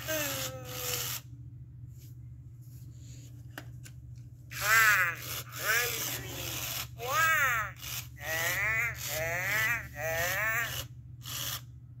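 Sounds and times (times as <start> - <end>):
toy electronic voice calls: 0.0 - 1.2, 4.5 - 11.6
steady low hum: 0.0 - 12.0.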